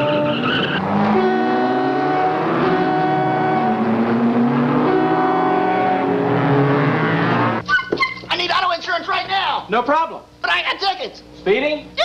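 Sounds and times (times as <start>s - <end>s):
car engines revving: 0.0s - 7.6s
man talking: 8.3s - 12.0s.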